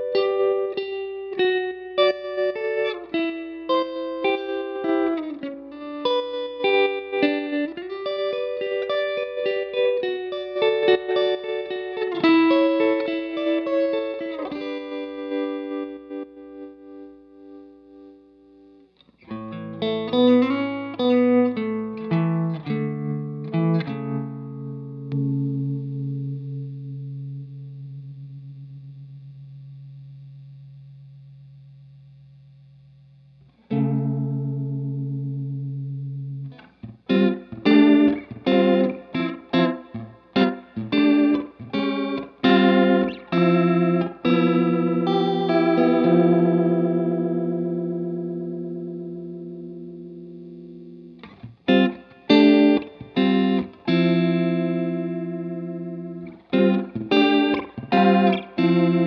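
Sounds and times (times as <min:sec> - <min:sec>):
electric guitar with pulsing modulation: 0:00.0 - 0:59.0.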